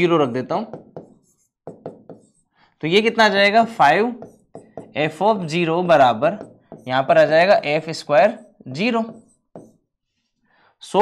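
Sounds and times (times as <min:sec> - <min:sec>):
pen tapping on writing surface: 0:00.7 - 0:02.3, 0:04.2 - 0:05.0, 0:06.4 - 0:06.9, 0:09.5 - 0:09.8.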